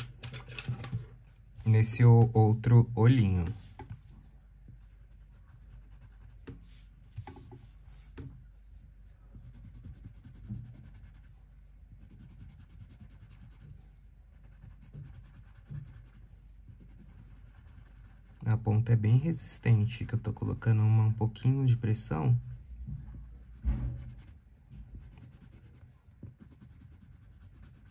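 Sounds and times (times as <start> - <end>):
colored pencil rubbing on paper: 3.3 - 4.1, 4.8 - 8.2, 9.2 - 18.4, 23.3 - 27.9.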